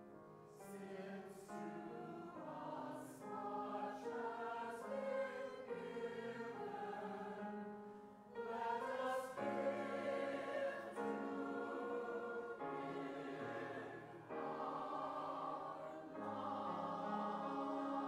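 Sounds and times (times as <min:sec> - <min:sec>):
mixed choir singing: 0:00.5 - 0:18.0.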